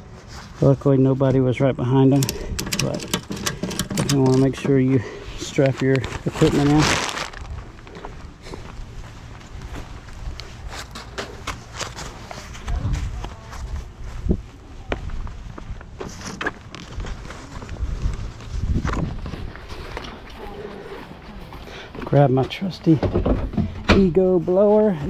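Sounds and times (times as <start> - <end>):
equipment handling clicks and knocks: 2.2 - 4.8
steady low rumble: 4.3 - 16.0
footsteps on pavement: 4.6 - 25.0.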